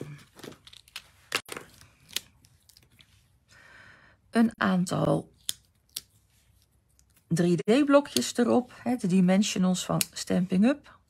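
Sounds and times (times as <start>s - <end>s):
paper rustling: 0.0s - 3.3s.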